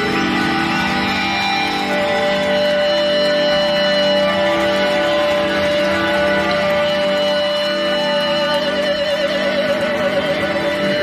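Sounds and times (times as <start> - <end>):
guitar: 0.0 - 11.0
live band instrumental: 0.0 - 11.0.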